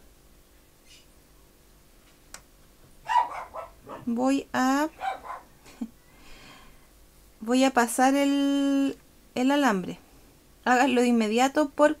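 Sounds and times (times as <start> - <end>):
dog barking: 3.0 - 4.2, 4.9 - 5.6.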